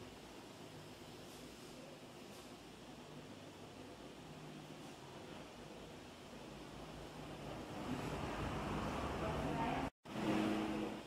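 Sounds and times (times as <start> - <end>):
low traffic rumble: 5.5 - 11.0.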